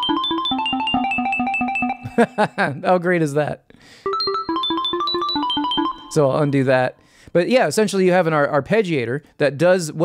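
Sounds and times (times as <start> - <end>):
fast keyboard arpeggio: 0.0 - 2.6, 4.1 - 6.9.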